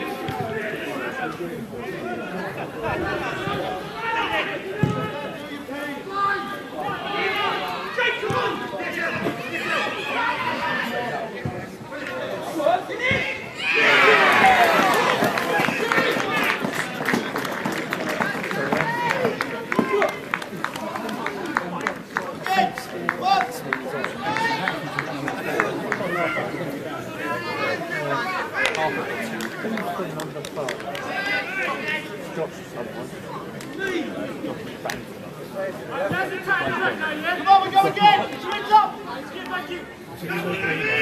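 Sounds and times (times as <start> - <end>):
people chattering: 0.0 - 41.0
spectators talking and calling out: 0.0 - 41.0.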